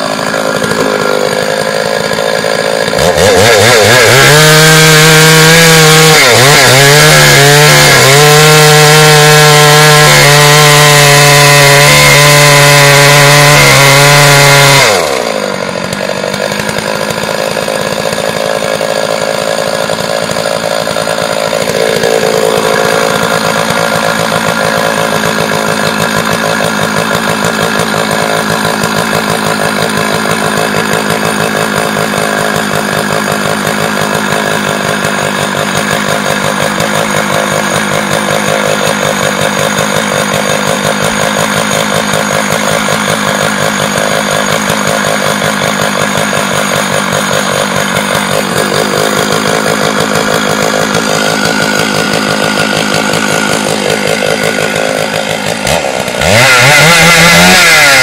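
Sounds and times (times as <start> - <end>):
chainsaw cutting log: 0.0 - 58.0.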